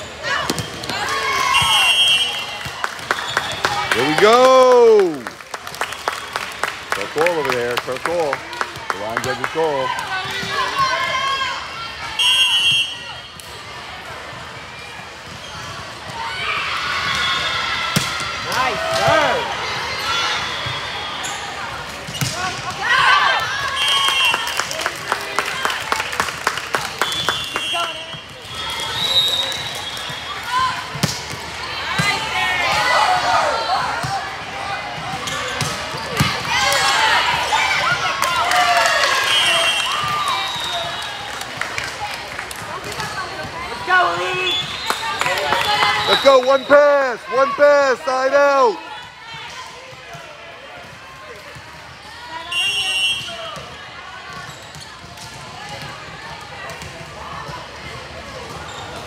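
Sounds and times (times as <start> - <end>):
sneaker squeaks on court: 22.1 - 22.4, 54.3 - 55.0, 58.5 - 59.0
people calling out and cheering: 36.3 - 49.8.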